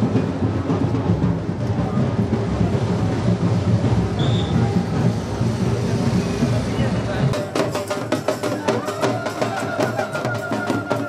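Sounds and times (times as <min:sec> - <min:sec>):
crowd chatter: 0:00.0 - 0:11.0
deep drums beating: 0:00.0 - 0:11.0.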